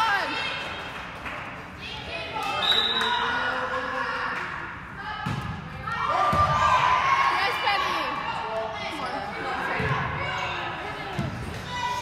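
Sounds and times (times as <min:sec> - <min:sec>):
voices shouting in a gymnasium: 0:00.0 - 0:12.0.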